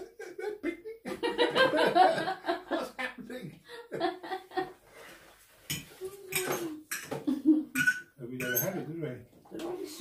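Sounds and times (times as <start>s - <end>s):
cutlery clinking on plates: 5.7s - 8.8s.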